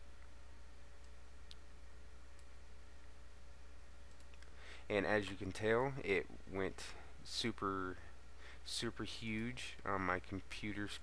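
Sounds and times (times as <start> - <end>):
low electrical hum: 0.0 - 11.0
computer mouse clicks: 4.0 - 4.6.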